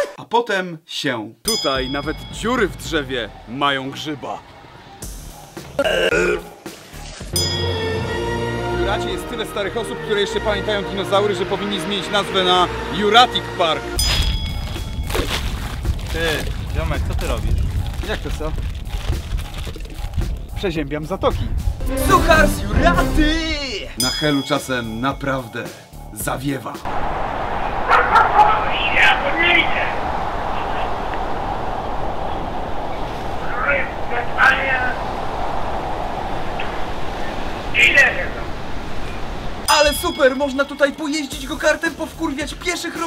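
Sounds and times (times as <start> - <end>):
man retching: 5.8 - 6.5
strong wind on microphone: 14.1 - 20.7, 26.9 - 39.7.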